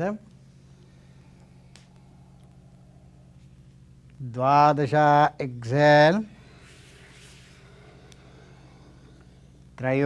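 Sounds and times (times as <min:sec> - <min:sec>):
low electrical hum: 0:00.0 - 0:10.0
steady tape hiss: 0:00.0 - 0:10.0.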